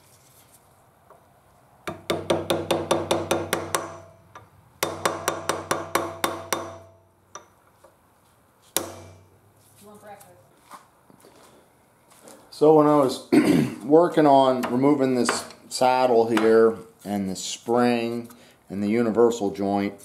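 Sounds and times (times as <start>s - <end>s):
hammer tapping metal punch: 1.9s - 7.6s, 8.8s - 9.3s.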